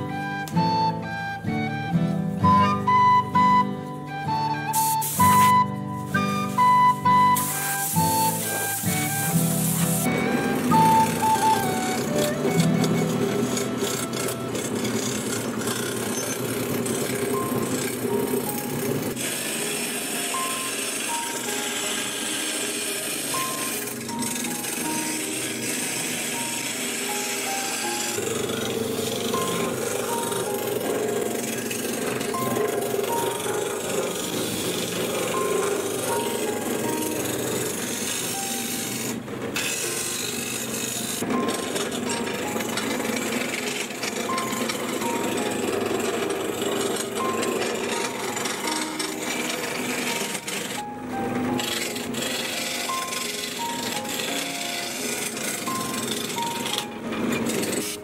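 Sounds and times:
background music: 0.0 - 15.8, 16.9 - 58.0
lathe gouge scraping wood: 0.2 - 58.0.

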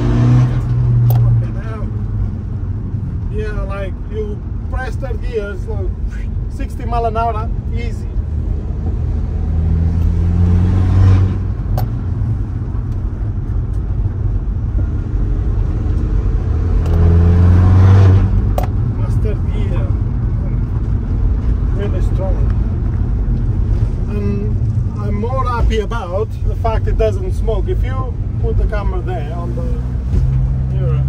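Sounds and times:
road noise: 0.0 - 31.0.

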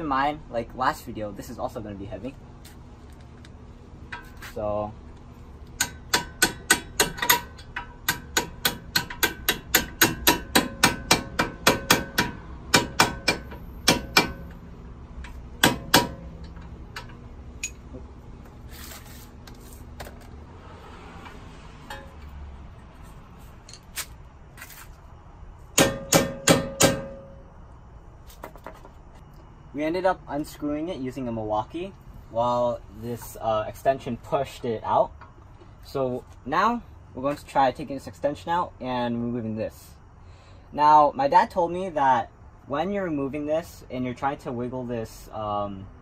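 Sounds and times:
hammer striking steel: 5.8 - 14.6, 15.6 - 17.8, 21.8 - 22.3, 25.7 - 27.5.

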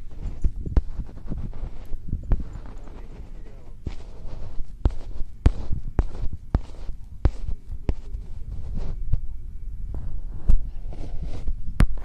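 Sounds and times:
wind buffeting microphone: 0.0 - 12.0
wind thumps on microphone: 0.0 - 12.0.

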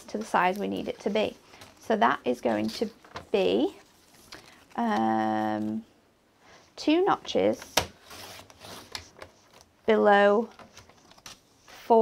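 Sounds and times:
card sliding across plastic: 8.0 - 9.6.

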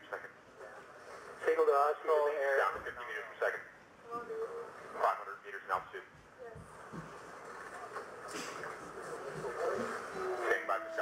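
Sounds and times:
murmur of many voices: 6.6 - 11.0.

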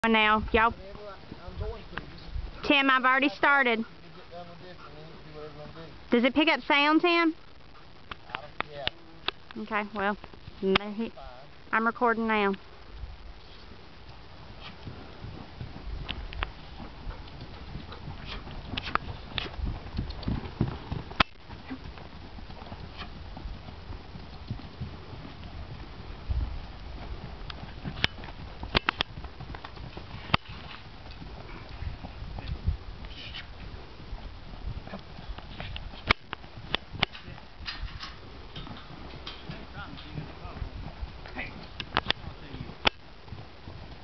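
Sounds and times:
horse hoofbeats on soft dirt: 0.0 - 11.6, 12.2 - 44.0
sharp clicks: 10.2 - 10.9, 17.2 - 21.5, 27.4 - 31.8, 41.6 - 42.2.

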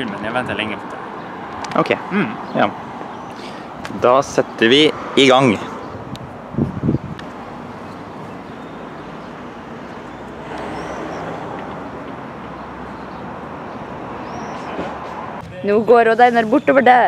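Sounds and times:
outdoor background rushing noise: 0.0 - 17.0.

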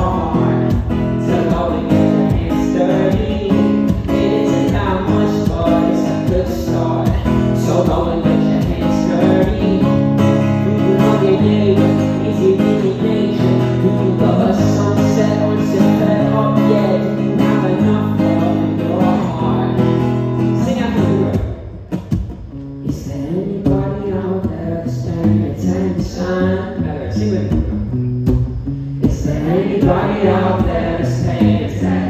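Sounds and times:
man singing into a microphone: 0.0 - 21.6, 22.8 - 27.7, 29.0 - 32.0
acoustic guitar strumming: 0.0 - 32.0.

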